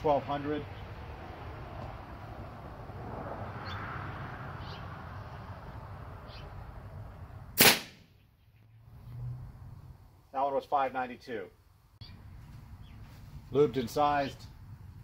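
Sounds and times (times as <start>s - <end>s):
air rifle shot: 7.6s - 8.1s.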